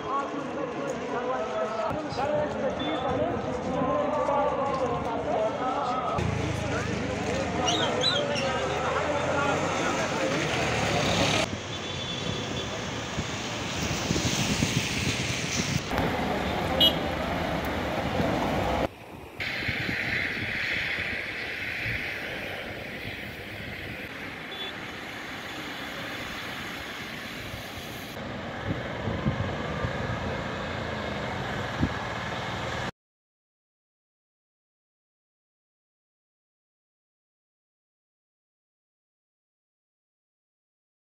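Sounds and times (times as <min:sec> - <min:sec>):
passing vehicles: 0:00.0 - 0:32.9.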